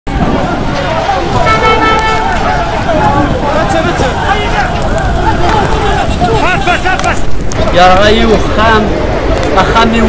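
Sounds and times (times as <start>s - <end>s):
several voices: 0.1s - 10.0s.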